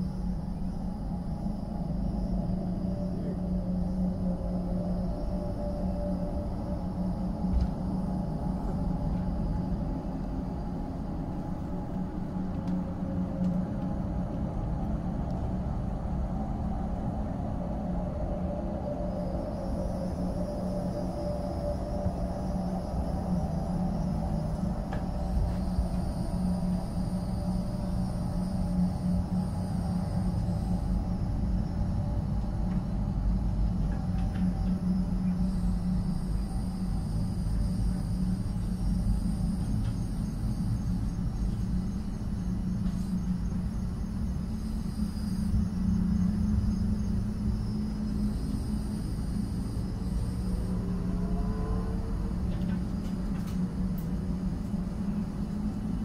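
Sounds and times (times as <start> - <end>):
constant hum: 0.0 - 56.0
low droning rumble: 0.0 - 56.0.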